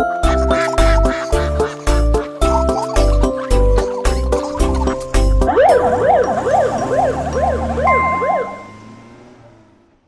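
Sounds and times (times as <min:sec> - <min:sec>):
music: 0:00.0 - 0:08.8
steady high tone: 0:05.4 - 0:09.2
ambulance siren wailing: 0:05.4 - 0:09.5.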